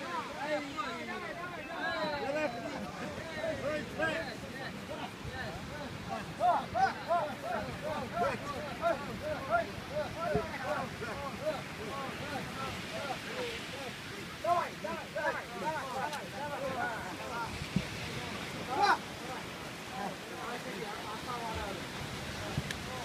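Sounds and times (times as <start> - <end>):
men shouting: 0.0 - 21.7.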